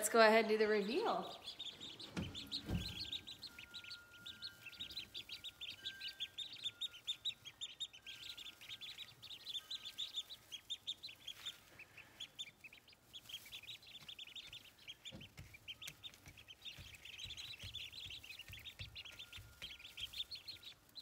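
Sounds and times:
ducklings peeping: 0.0 - 21.0.

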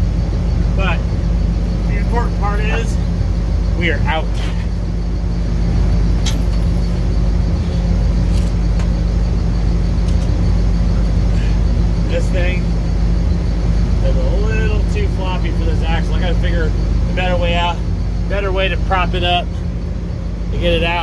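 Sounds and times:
low machinery drone: 0.0 - 21.0.

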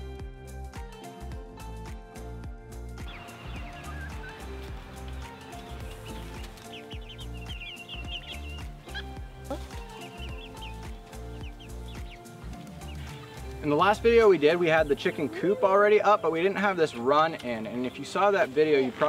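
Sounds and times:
background music: 0.0 - 19.0
chickens calling: 3.0 - 19.0.

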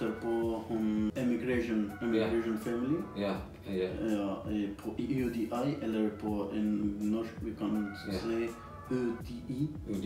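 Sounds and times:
background music: 0.0 - 10.0
man talking: 0.0 - 10.0.

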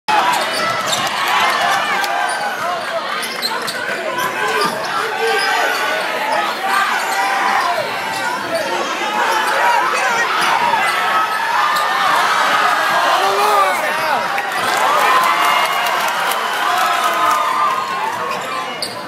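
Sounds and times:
crowd chatter: 0.1 - 19.0
people shouting: 4.1 - 18.1.

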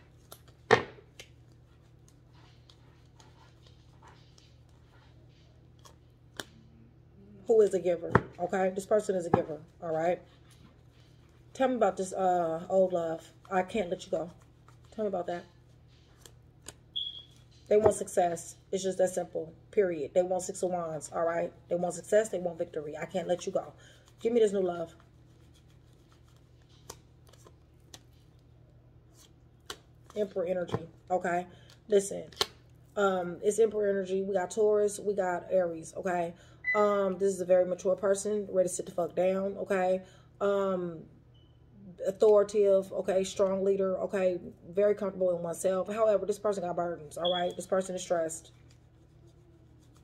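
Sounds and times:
low steady hum: 0.0 - 50.0
cards being shuffled: 23.1 - 28.4, 48.5 - 50.0.

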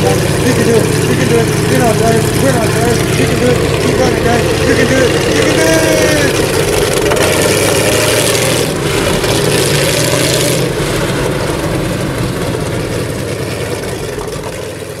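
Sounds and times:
snowmobile engine running: 0.0 - 15.0.

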